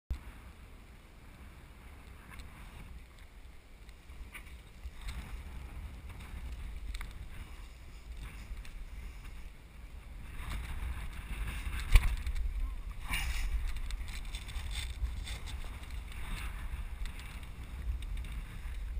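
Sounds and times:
wind rumble on microphone: 0.1 - 18.9.

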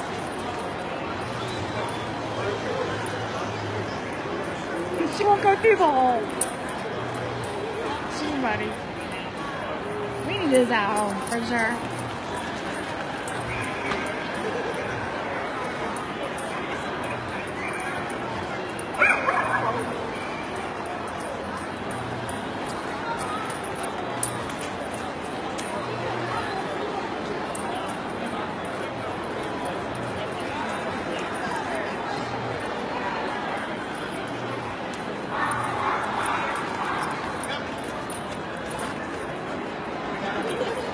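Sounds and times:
crowd hubbub: 0.0 - 40.9
dog barking: 19.0 - 19.8.

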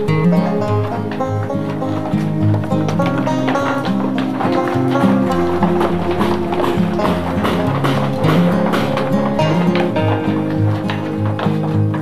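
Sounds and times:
bass line: 0.0 - 12.0
guitar piece with plucked notes: 0.0 - 12.0.

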